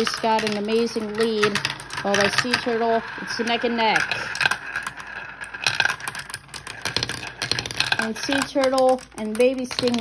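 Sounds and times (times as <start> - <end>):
glass marbles clattering in plastic run: 0.0 - 10.0.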